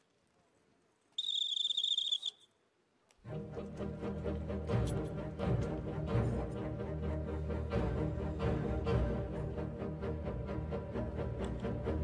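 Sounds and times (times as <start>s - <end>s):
trilled whistle blown: 1.2s - 2.5s
low orchestral music: 3.2s - 12.0s.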